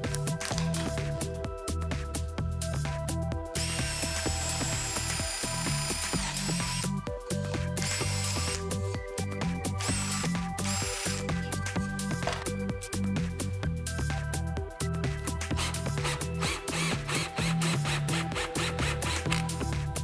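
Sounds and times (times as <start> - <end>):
background music with beat: 0.0 - 20.0
cordless drill whining: 3.6 - 12.6, 15.3 - 19.8.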